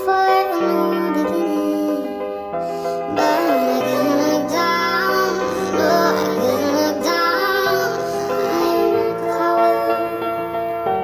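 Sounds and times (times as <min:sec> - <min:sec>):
sped-up female vocal singing: 0:03.1 - 0:10.2.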